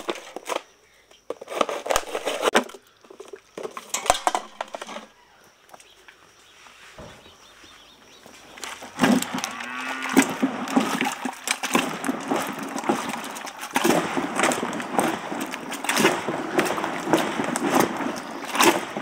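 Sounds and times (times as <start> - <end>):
milk churning with plunger: 8.6 - 19.0.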